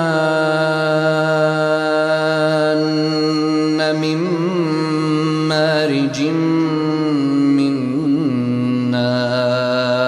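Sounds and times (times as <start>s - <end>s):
person reciting in chant: 0.0s - 10.0s.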